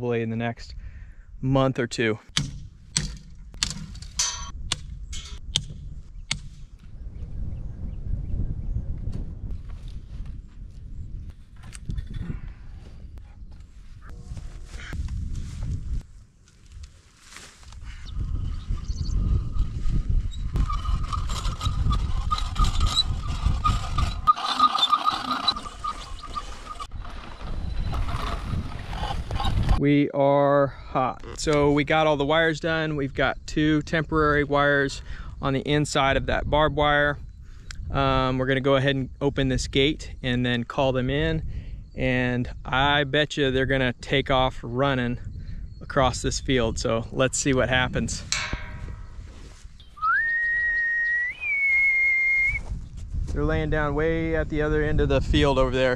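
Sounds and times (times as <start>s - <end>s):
sharp knocks: 2.3s - 6.6s, 48.3s - 49.5s
wind rumbling on microphone: 2.4s - 29.8s, 31.1s - 55.9s
hand reel whirring and rattling: 19.3s - 29.8s.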